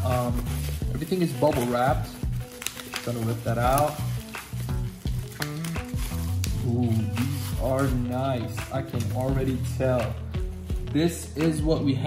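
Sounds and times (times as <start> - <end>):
background music: 0.0 - 12.0
bubble wrap crackling: 0.0 - 12.0.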